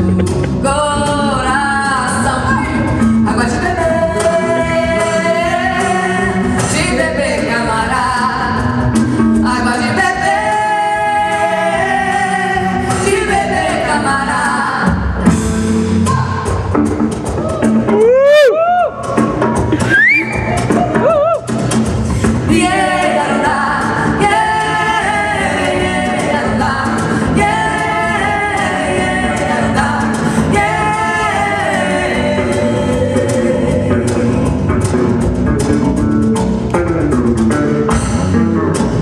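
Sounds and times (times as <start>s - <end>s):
instrumental accompaniment: 0.0s - 39.0s
two women singing a duet: 0.5s - 15.1s, 22.2s - 34.7s.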